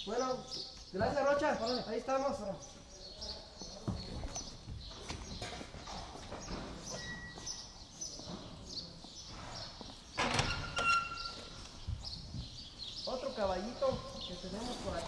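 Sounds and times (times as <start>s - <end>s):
birds chirping: 0.0s - 15.0s
footsteps and knocks: 3.6s - 13.0s.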